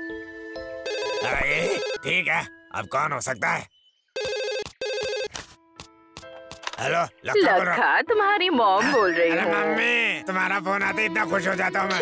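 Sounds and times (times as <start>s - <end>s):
telephone ringing: 0.8s - 2.3s, 4.2s - 5.4s.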